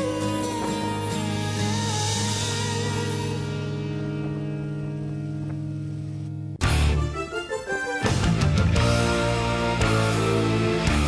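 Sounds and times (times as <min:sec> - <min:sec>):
low bass: 0:00.0 - 0:07.3, 0:08.0 - 0:11.0.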